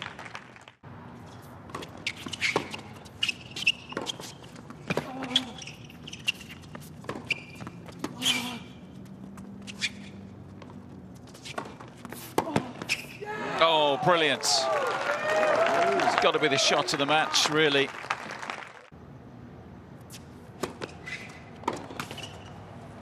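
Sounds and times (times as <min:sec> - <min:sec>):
racket striking tennis ball: 0:01.6 - 0:05.4
footsteps on hard court: 0:01.6 - 0:13.0
ball bouncing on court: 0:01.7 - 0:09.6, 0:10.5 - 0:13.1.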